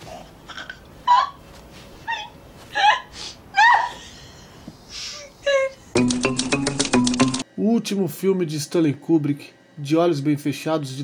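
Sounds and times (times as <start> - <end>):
woman laughing hysterically: 2.2 - 4.6.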